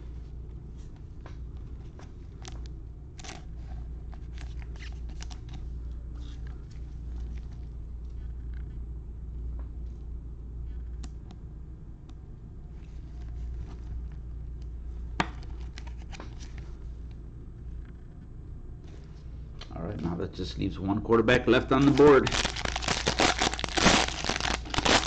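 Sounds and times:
steady low hum: 0.0 - 25.0
plastic card sleeve rustling: 15.4 - 16.8, 21.5 - 25.0.

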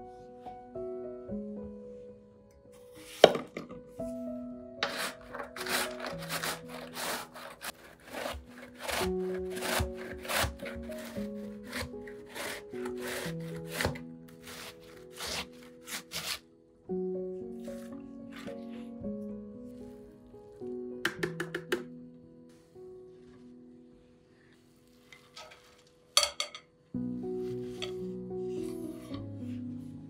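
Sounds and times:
soft piano music: 0.0 - 30.0
knife chopping on wooden board: 4.8 - 16.4
vegetable rasping on metal grater: 4.8 - 16.4.

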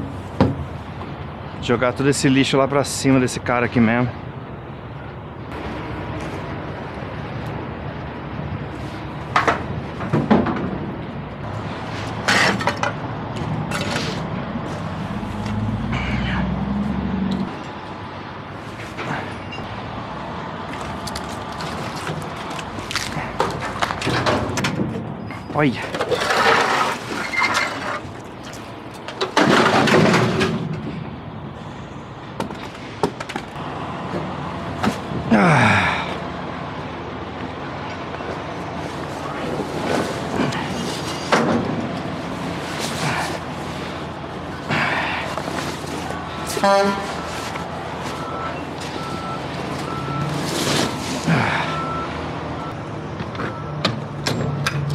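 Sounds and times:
scrap metal clanking and scraping: 11.9 - 16.4, 21.2 - 31.0, 38.8 - 51.5.

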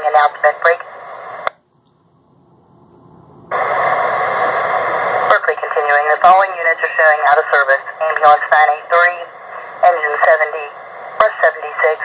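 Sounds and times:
radio transmission hiss: 0.0 - 1.5, 3.5 - 12.0
radio squelch click: 8.0 - 8.9.

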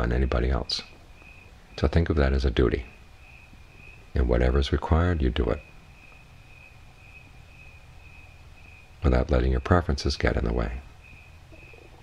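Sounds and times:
crickets chirring: 0.0 - 12.0
low background hum: 0.0 - 12.0.

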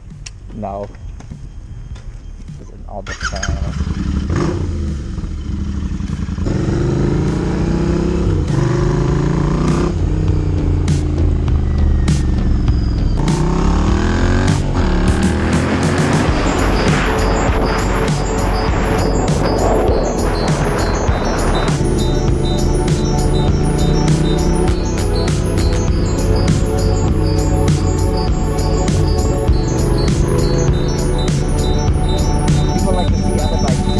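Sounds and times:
background music: 0.0 - 33.9
motorcycle engine accelerating: 3.1 - 33.9.

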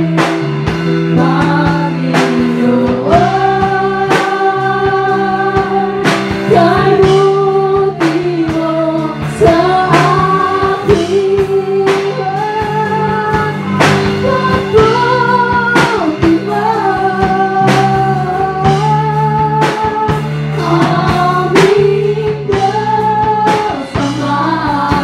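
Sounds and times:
drum or cymbal hits: 0.0 - 25.0
live band playing slow song: 0.0 - 25.0
woman singing into microphone: 0.0 - 25.0.

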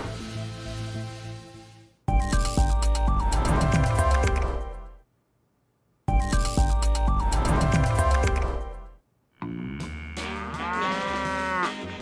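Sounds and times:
cow mooing: 9.4 - 12.0.

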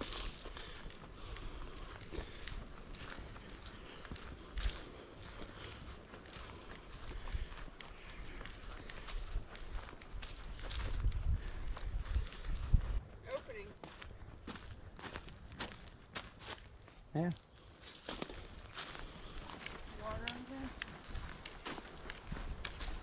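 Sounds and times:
footsteps crunching dry leaves: 0.0 - 23.0.

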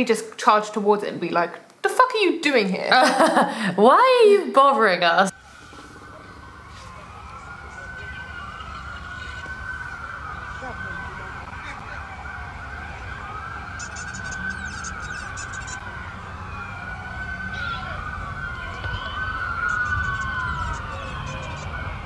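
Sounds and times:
police sirens wailing: 5.3 - 22.0.

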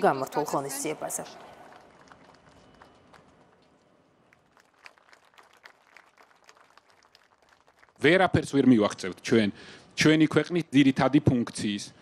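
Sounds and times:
faint scattered applause: 1.2 - 8.8.

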